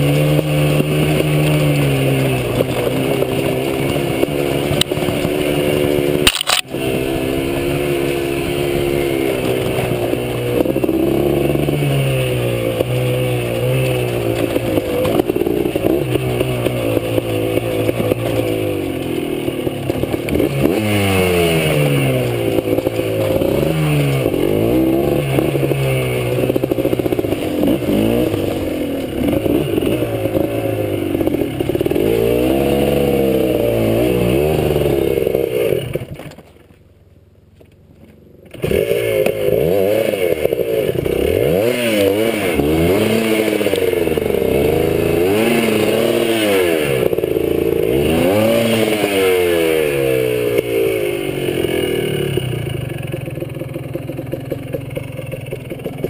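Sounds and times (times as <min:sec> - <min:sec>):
dirt bike engine revving: 0:00.0 - 0:36.3, 0:38.4 - 0:56.0.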